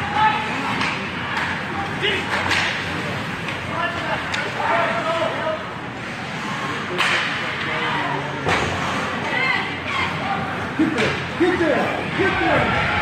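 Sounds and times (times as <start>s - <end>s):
scattered crowd voices: 0.0s - 13.0s
hockey sticks cracking puck: 0.7s - 4.6s, 7.0s - 7.6s.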